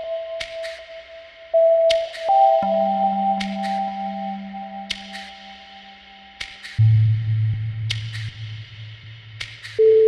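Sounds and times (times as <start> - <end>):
ambient music tones: 0.0 - 8.6.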